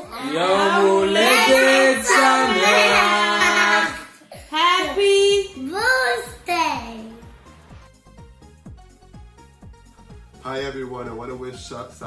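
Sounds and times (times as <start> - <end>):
child singing held notes: 0.0 - 4.1.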